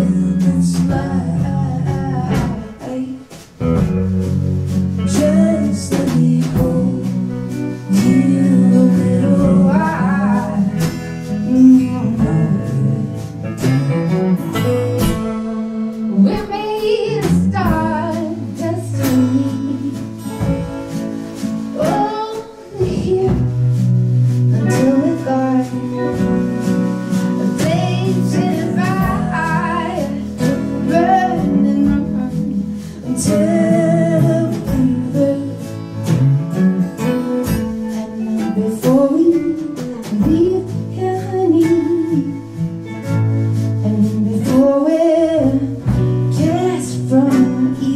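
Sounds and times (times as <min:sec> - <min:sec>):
woman singing: 0:00.0 - 0:04.0, 0:05.0 - 0:13.7, 0:14.4 - 0:47.9
acoustic guitar strumming: 0:00.0 - 0:47.9
drum hits: 0:10.8 - 0:25.1.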